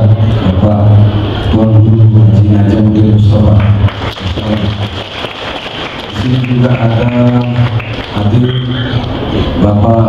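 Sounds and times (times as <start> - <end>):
man's voice over loudspeaker: 0.0 - 10.0
room noise: 0.0 - 10.0.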